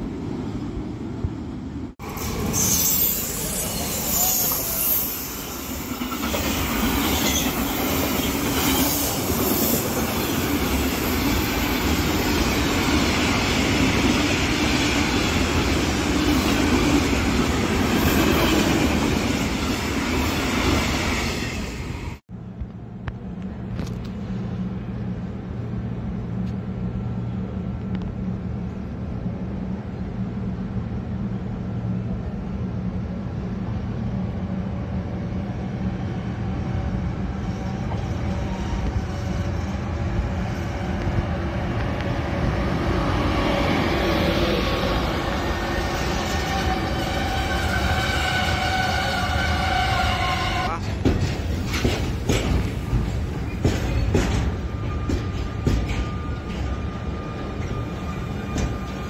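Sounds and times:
freight train passing at speed: 0.0s - 59.0s.

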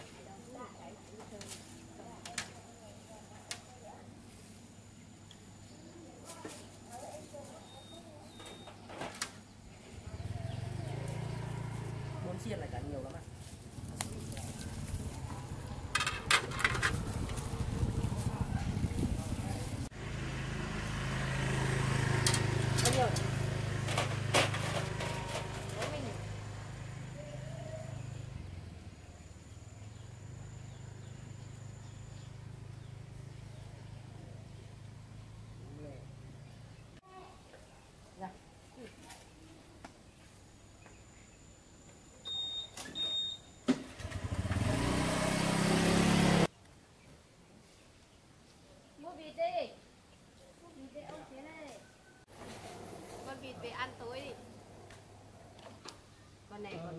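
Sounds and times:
plastic bag rustling and crinkling: 13.3s - 19.9s.

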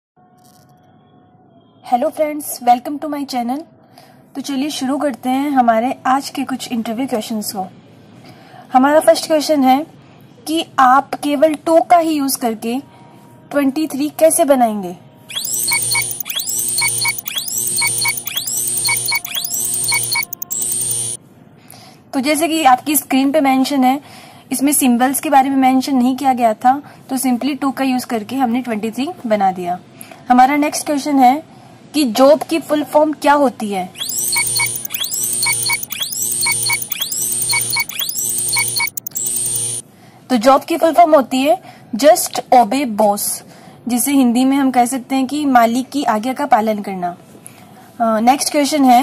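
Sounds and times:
short beeps: 15.3s - 21.2s, 34.0s - 39.8s.

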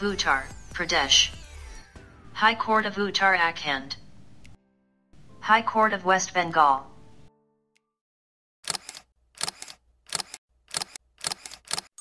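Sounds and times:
camera shutter clicks: 8.6s - 11.9s.

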